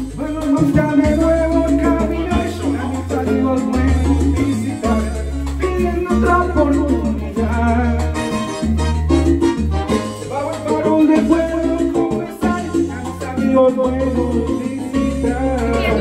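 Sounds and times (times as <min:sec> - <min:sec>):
man singing into a microphone: 0:00.0 - 0:08.6, 0:10.1 - 0:16.0
salsa karaoke music: 0:00.0 - 0:16.0.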